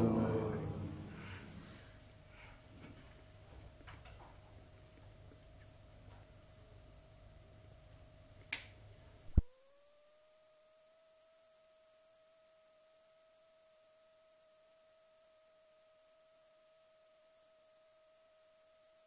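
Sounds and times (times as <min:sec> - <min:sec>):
room noise: 0:00.0 - 0:19.0
short snap: 0:08.4 - 0:09.5
sharp click: 0:08.5 - 0:09.5
faint electronic tone: 0:09.3 - 0:19.0.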